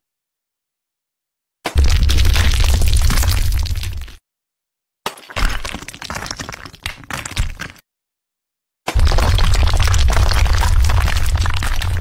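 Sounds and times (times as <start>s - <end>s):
wall cracking and breaking: 1.7s - 4.2s, 5.1s - 7.8s, 8.9s - 12.0s.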